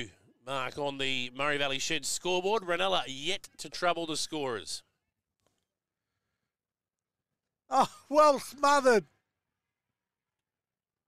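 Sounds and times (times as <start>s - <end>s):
man exclaiming: 7.7s - 9.1s.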